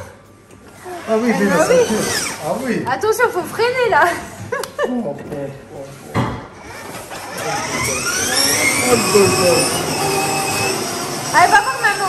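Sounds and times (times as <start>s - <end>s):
electric motor whine: 1.2s - 2.6s, 6.6s - 12.0s.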